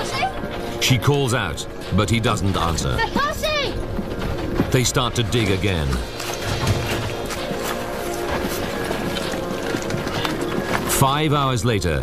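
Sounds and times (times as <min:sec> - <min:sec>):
background music with held tones: 0:00.0 - 0:12.0
rubble knocking and clattering: 0:02.6 - 0:11.3.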